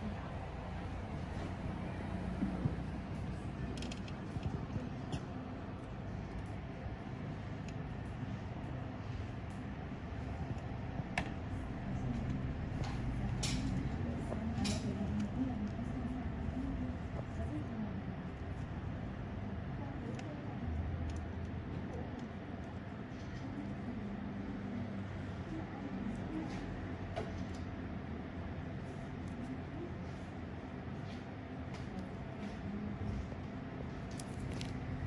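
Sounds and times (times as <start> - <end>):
faint indistinct voices: 0.0 - 35.0.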